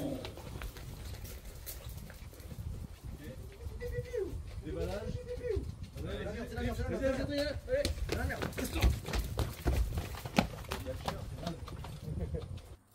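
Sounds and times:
low wind rumble: 0.0 - 12.8.

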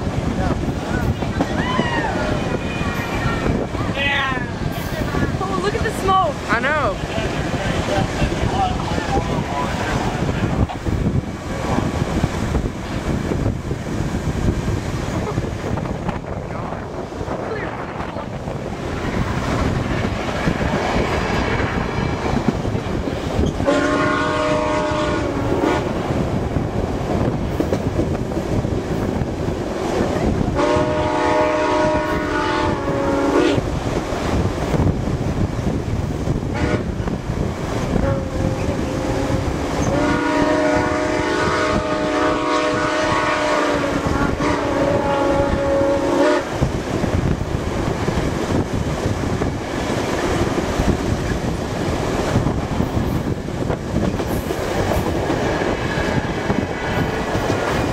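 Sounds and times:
train wheels rushing on rails: 0.0 - 57.9
locomotive chime horn blasts: 23.6 - 25.9, 30.6 - 33.6, 38.0 - 46.5.

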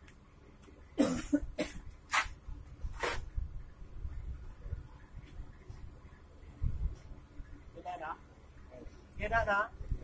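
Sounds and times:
person coughing: 1.0 - 1.8.

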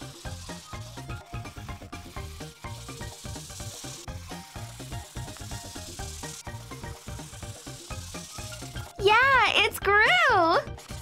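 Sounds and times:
background music with beat: 0.0 - 9.1.

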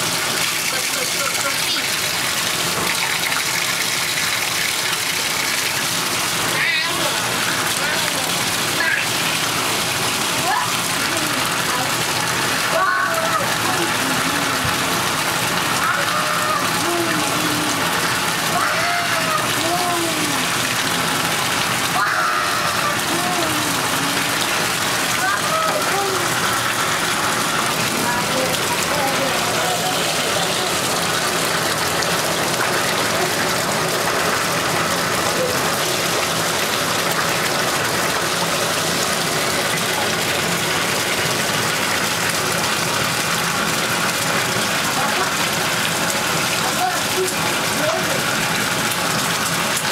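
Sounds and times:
water running into bathtub: 0.0 - 49.9
faint voices: 15.7 - 21.3, 21.9 - 31.2.

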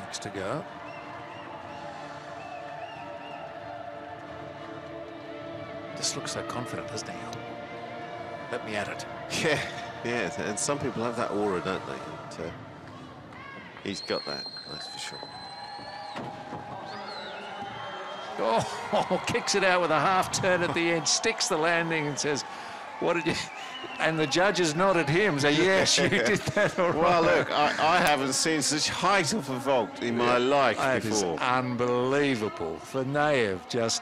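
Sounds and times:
faint music: 0.0 - 34.0
crowd hubbub: 22.4 - 31.4.

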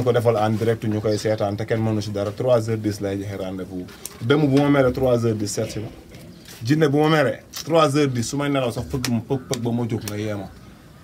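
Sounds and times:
man speaking: 0.0 - 10.6.

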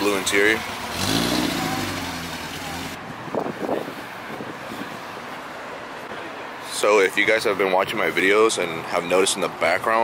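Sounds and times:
car engine driving away slowly: 0.1 - 3.0.

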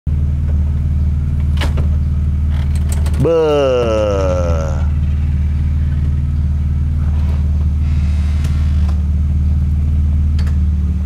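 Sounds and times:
convertible roof motor hum: 0.1 - 11.0.

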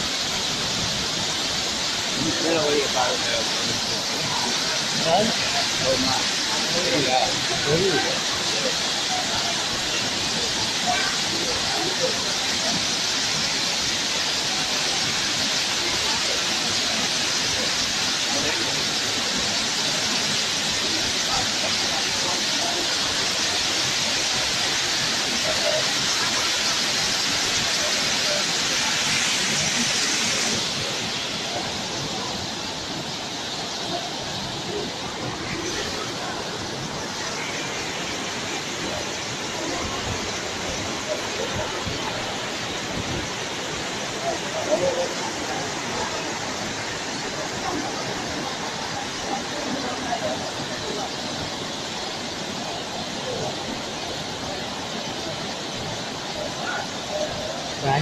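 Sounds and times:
waterfall rushing: 0.0 - 58.0.

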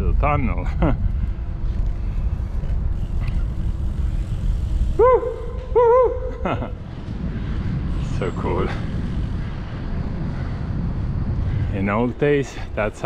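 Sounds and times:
bicycle tyres rumbling: 0.0 - 13.0
wind on microphone: 0.0 - 13.0.

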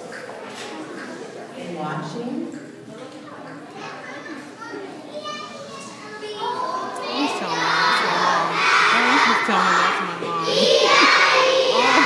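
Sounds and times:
children shouting and cheering: 3.8 - 12.0.

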